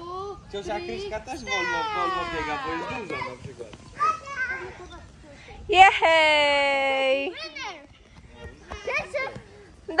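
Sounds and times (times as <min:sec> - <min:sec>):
children chattering: 0:00.0 - 0:05.7, 0:07.1 - 0:10.0.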